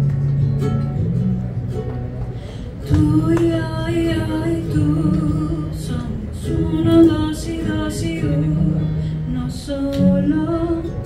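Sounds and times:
acoustic guitar: 0.0s - 11.0s
strummed ukulele: 0.0s - 11.0s
person singing: 2.8s - 11.0s.

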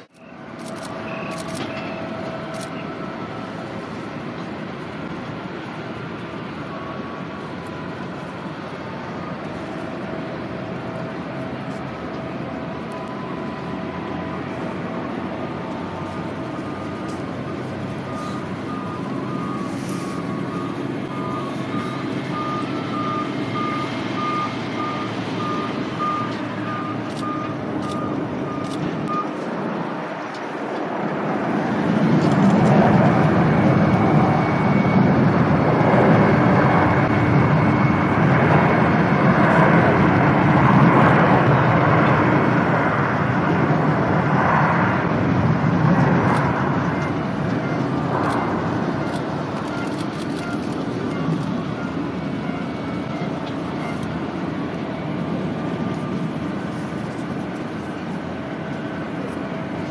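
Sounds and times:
loud engine noise: 0.0s - 59.9s
vehicle warning beeper pulsing: 0.2s - 3.6s, 12.2s - 29.4s, 46.8s - 56.8s.

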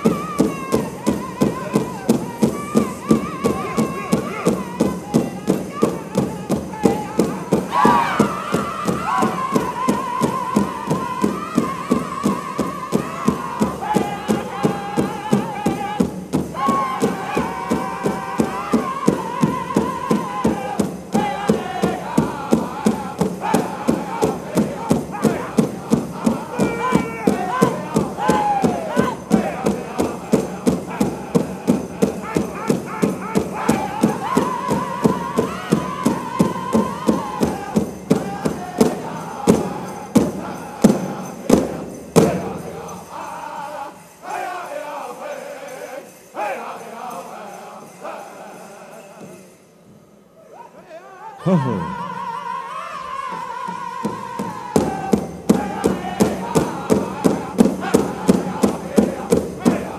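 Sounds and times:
large drum beaten steadily: 0.0s - 45.8s, 53.0s - 59.9s
group singing in unison: 0.0s - 49.7s, 50.4s - 59.9s.

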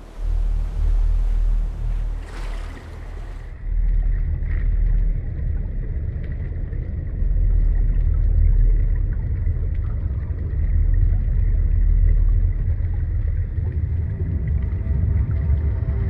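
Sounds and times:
faint sustained musical tones: 0.0s - 4.1s, 13.6s - 16.0s
deep low rumbling drone: 0.0s - 16.0s.

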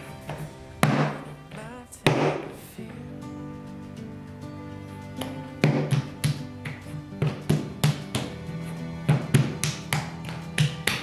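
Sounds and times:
background music: 0.0s - 11.0s
clay knocked on wooden bench: 5.6s - 8.3s, 9.1s - 11.0s.

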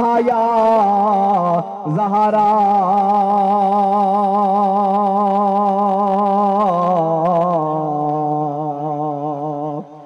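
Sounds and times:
man singing a long note: 0.0s - 10.0s.

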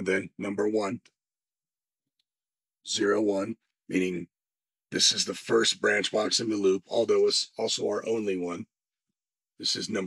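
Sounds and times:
man speaking: 0.0s - 1.0s, 2.9s - 4.3s, 4.9s - 8.7s, 9.6s - 10.0s.

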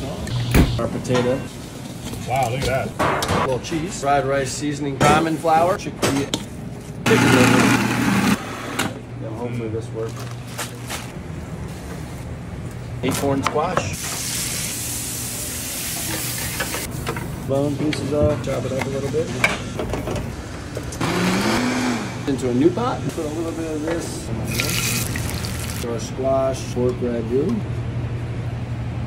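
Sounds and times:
low mechanical hum: 0.0s - 21.3s, 21.9s - 29.0s
blender motor whirring: 7.1s - 8.4s, 21.0s - 22.1s.

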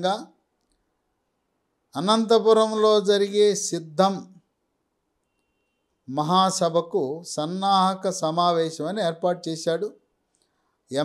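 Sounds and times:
man speaking: 0.0s - 0.3s, 2.0s - 4.4s, 6.1s - 10.0s.

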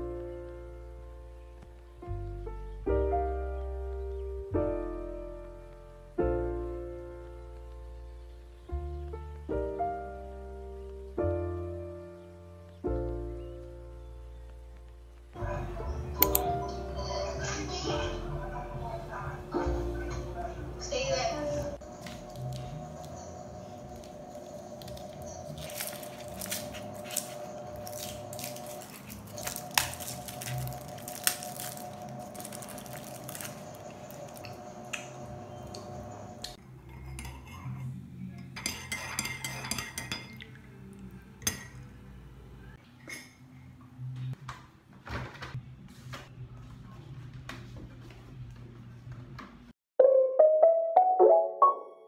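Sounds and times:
cutlery clinking: 36.9s - 40.6s.

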